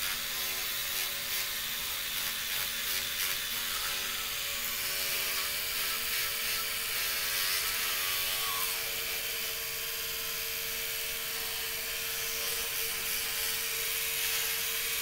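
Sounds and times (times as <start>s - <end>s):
electric toothbrush humming: 0.0s - 15.0s.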